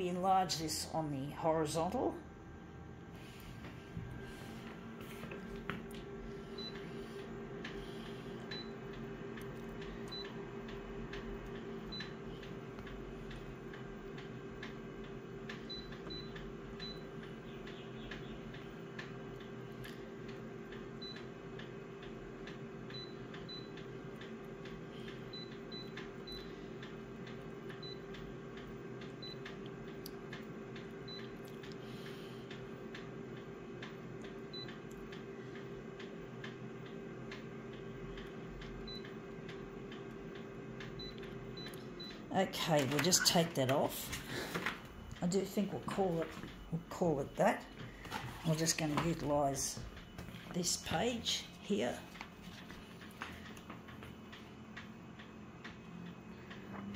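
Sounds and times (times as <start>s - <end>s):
copier idling hum: 0.0s - 56.9s
high key beeps: 42.8s - 43.8s.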